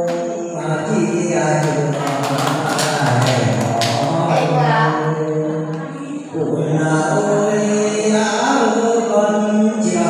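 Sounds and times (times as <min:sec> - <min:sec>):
man singing unaccompanied: 0:00.0 - 0:10.0.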